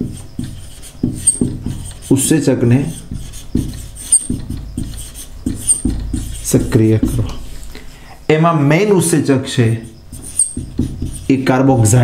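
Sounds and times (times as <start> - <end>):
marker squeaking on whiteboard: 0.0 - 8.0, 8.7 - 12.0.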